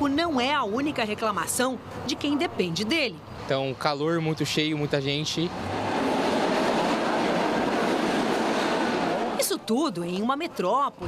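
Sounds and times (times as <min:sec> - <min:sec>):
train running noise: 0:04.9 - 0:10.4.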